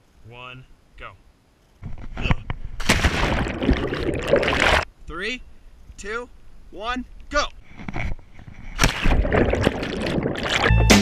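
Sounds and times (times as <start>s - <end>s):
underwater splash and bubbling: 2.8s - 4.9s, 8.8s - 10.8s.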